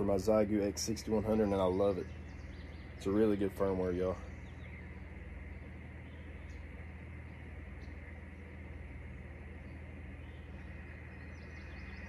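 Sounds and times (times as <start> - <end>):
low steady hum: 0.0 - 12.0
radio static hiss: 0.0 - 12.0.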